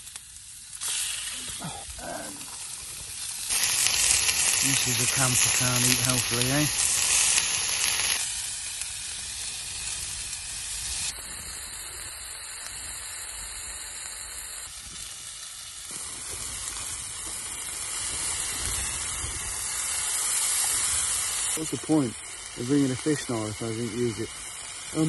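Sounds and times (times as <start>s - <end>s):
food sizzling in a pan: 0.0s - 25.0s.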